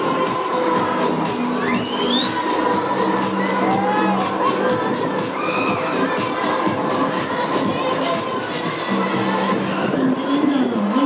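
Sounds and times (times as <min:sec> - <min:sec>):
loud ride music: 0:00.0 - 0:11.0
riders screaming and shouting: 0:03.2 - 0:06.6.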